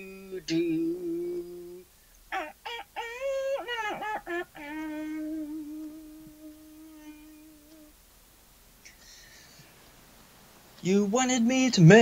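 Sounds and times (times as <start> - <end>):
person humming low note: 0.0 - 1.8, 4.6 - 8.0.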